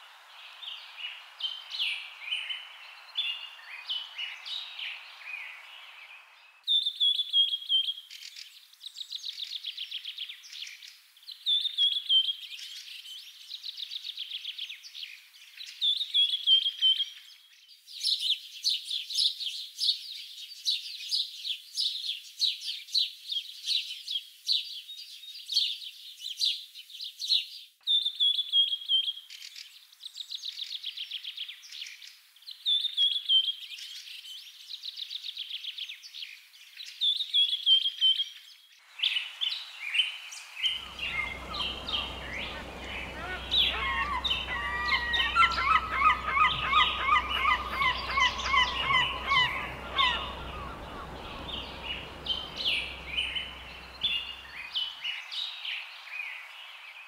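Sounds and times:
small birds chirping and trilling: 0:34.7 - 0:57.0.

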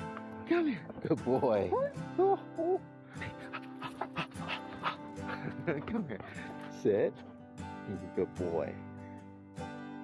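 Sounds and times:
background music: 0:00.0 - 0:10.0
dog panting: 0:03.1 - 0:07.6.

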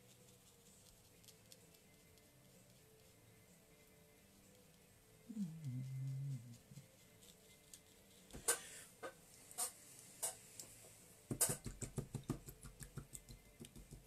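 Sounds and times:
paintbrushes tapping on desk: 0:11.3 - 0:14.0.

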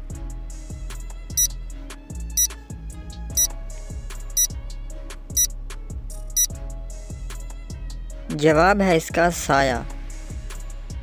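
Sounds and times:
background music with steady beat: 0:00.0 - 0:08.7, 0:09.8 - 0:11.0.

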